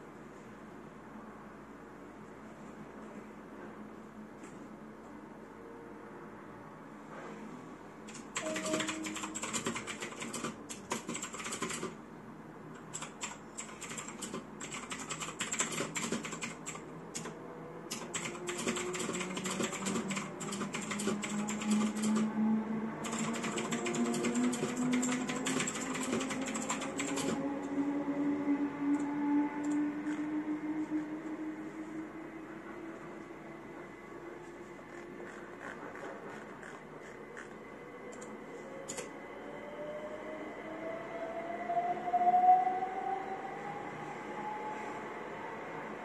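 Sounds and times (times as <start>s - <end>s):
mechanical keyboard typing: 8.1s - 12.0s, 12.8s - 17.3s, 17.9s - 22.3s, 23.0s - 27.4s
low hum rising in pitch: 27.4s - 35.0s.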